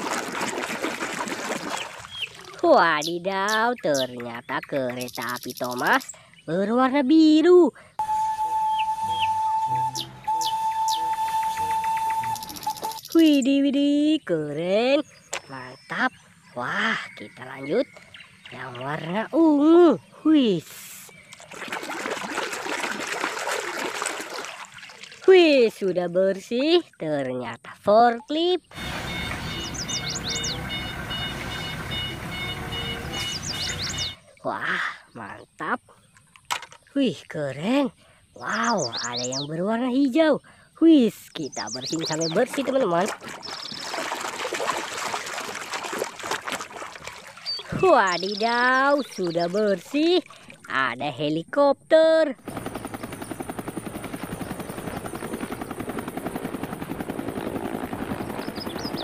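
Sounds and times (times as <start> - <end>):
quick high chirps: 9.9 - 13.3
short high beeps: 12.2 - 13.2
helicopter rotor beating: 28.7 - 34.2, 52.4 - 59.0
forklift engine rumbling: 28.8 - 34.1.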